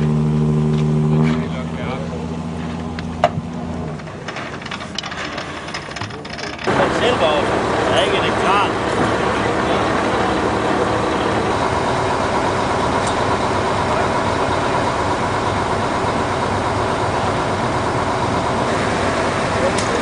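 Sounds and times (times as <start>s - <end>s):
large engine humming: 0.0s - 20.0s.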